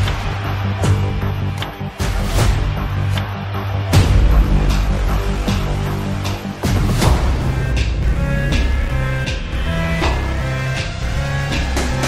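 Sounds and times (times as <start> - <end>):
deep bass notes: 4.0 - 12.0.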